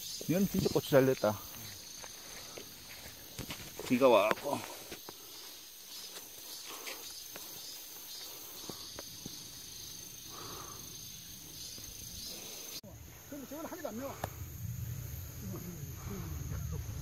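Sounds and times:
high-pitched insect drone: 0.0 - 17.0
plants rustling and clicking: 1.4 - 5.3.

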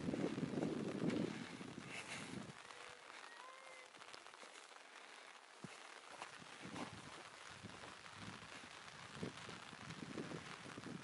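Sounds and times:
wind buffeting microphone: 0.0 - 3.2, 6.3 - 11.0
faint open-air hiss: 0.0 - 11.0
faint whistle-like tones: 2.6 - 3.9.

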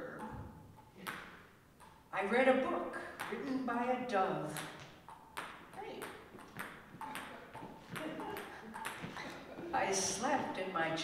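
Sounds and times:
ping-pong ball tapped on paddle: 0.0 - 2.0, 3.2 - 3.5, 4.5 - 9.2.

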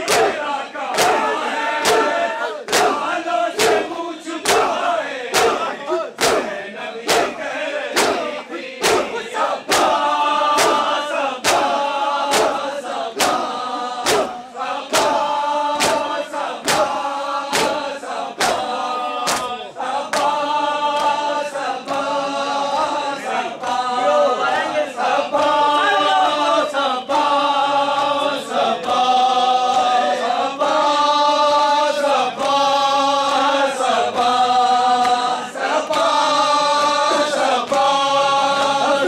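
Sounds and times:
hands slapping bare chests: 0.0 - 22.9, 35.0 - 39.0
men chanting in unison: 0.0 - 39.0.

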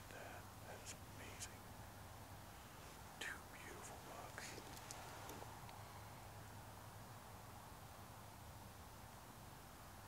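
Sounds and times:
person whispering: 0.0 - 1.7, 3.2 - 4.8
low steady hum: 0.0 - 10.0.

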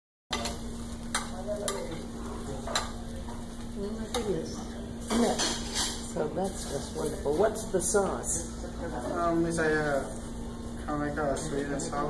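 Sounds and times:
shrimp sizzling on a platter: 0.3 - 12.0.

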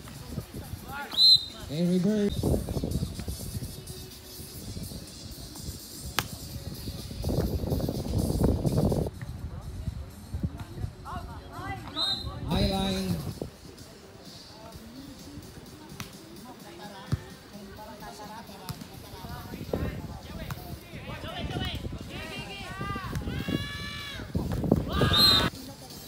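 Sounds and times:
voices calling and shouting: 0.0 - 26.0
ball slap: 6.1 - 6.4
loud shout: 22.2 - 25.5.

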